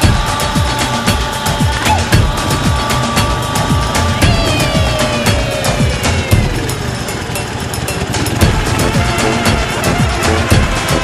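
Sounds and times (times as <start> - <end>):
motorcycle engine running at low revs: 0.0 - 11.0.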